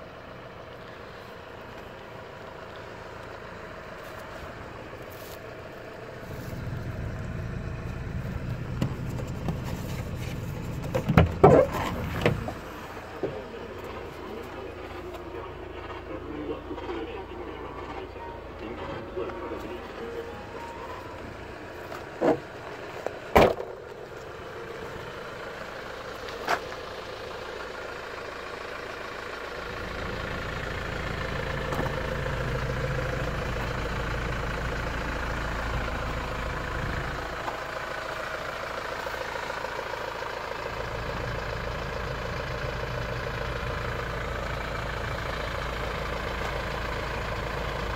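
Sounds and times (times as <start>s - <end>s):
car engine idling: 0.0s - 47.9s.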